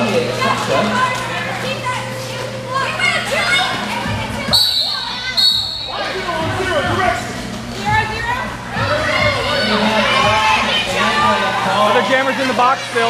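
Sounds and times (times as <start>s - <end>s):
chatter and shouts of crowd: 0.0s - 13.0s
referee's whistle blown: 4.5s - 6.2s.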